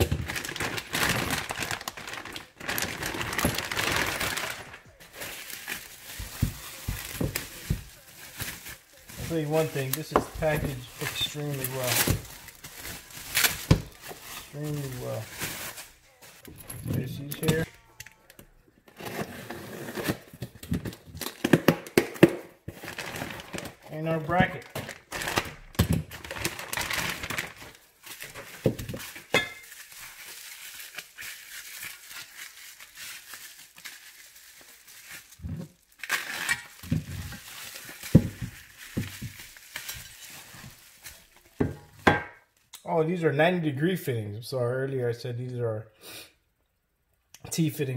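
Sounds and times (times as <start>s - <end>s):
bubble wrap crinkling and rustling: 0.0s - 21.5s, 22.6s - 42.7s.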